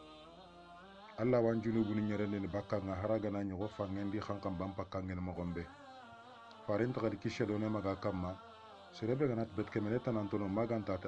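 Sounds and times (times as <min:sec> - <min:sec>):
man preaching: 0:01.2 - 0:05.9, 0:06.5 - 0:11.0.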